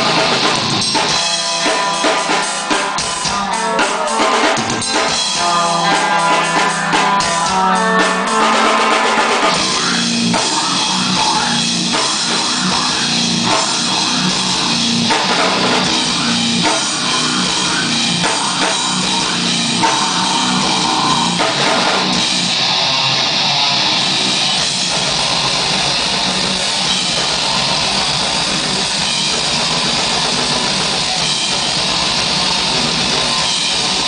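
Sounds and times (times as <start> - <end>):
rock band playing: 0.0 - 34.0.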